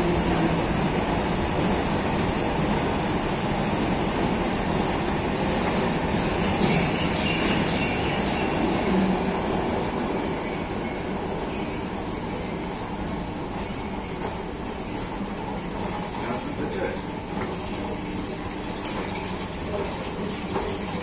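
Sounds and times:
train rumbling: 0:00.0 - 0:21.0.

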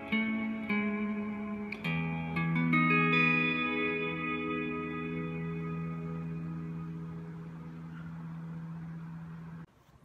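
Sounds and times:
electric guitar note ringing: 0:00.0 - 0:09.7.

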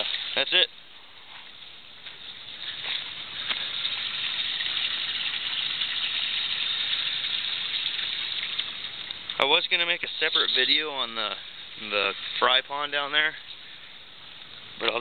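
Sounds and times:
water splashing into pond: 0:00.0 - 0:00.6, 0:02.2 - 0:11.0.

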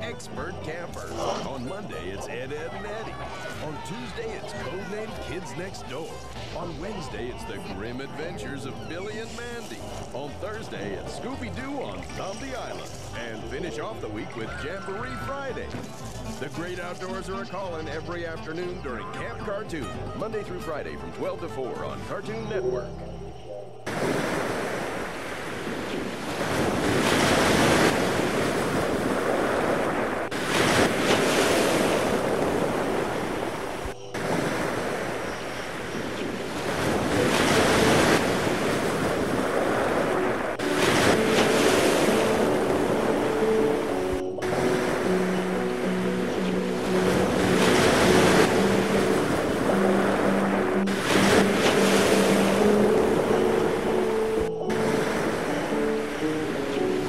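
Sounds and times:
ocean water splashing: 0:00.0 - 0:17.6, 0:23.3 - 0:57.0
soft music with held notes: 0:00.0 - 0:57.0
wind buffeting microphone: 0:23.9 - 0:54.0.

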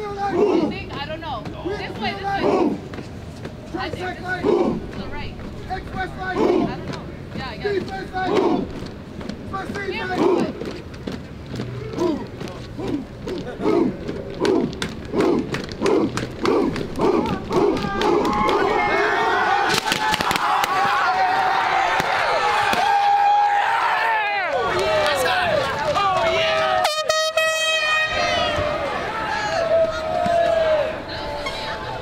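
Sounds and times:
group chanting in rhythm: 0:06.3 - 0:07.0, 0:13.6 - 0:19.5
crowd yelling and cheering: 0:11.8 - 0:32.0.

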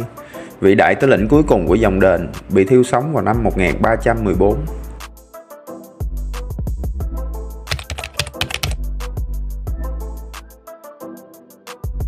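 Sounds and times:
background music with bass: 0:00.0 - 0:10.8, 0:11.6 - 0:12.0
key clicks: 0:07.7 - 0:08.8.

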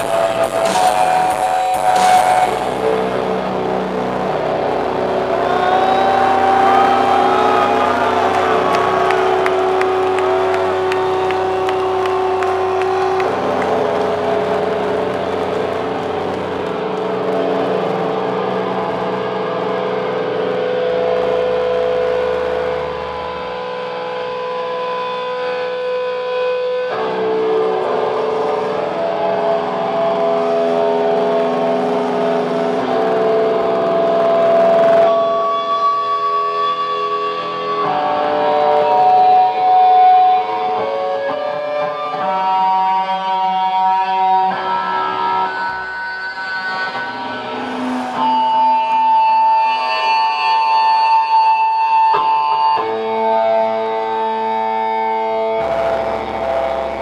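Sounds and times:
distorted guitar and bass drones: 0:00.0 - 0:57.0.

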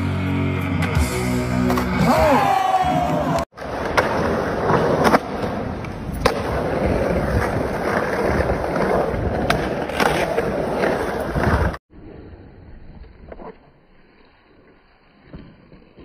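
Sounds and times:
skateboard wheels rolling on concrete: 0:00.0 - 0:16.0.

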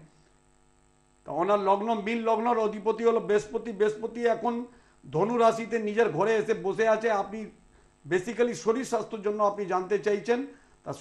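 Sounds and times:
faint electrical hum: 0:00.0 - 0:11.0
man speaking: 0:01.3 - 0:11.0.

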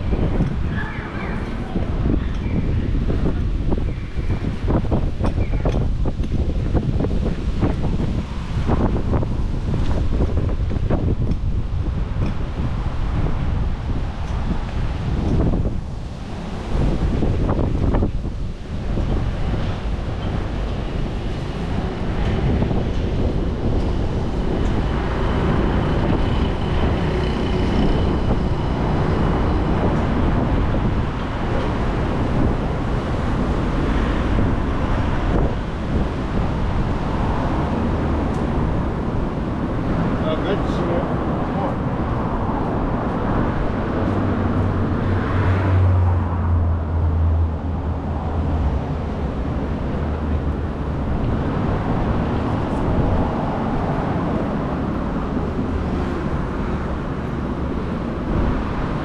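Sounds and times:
road traffic passing: 0:00.0 - 0:59.0
wind buffeting microphone: 0:00.0 - 0:59.0.

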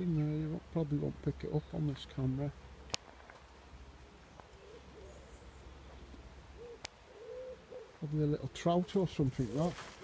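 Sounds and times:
pigeon cooing: 0:04.0 - 0:08.4.

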